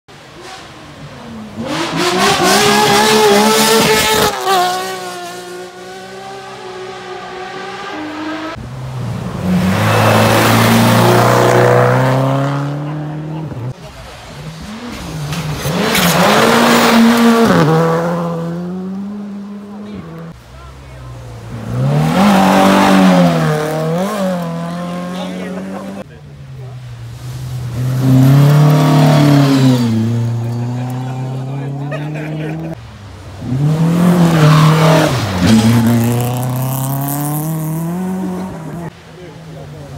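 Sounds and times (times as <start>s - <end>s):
rally cars passing at speed: 0.1s - 39.9s.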